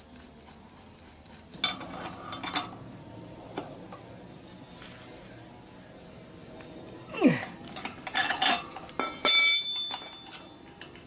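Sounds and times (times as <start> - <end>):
metal clink: 1.6 - 2.8, 7.8 - 10.9
metal lever clanging on concrete: 7.8 - 10.6.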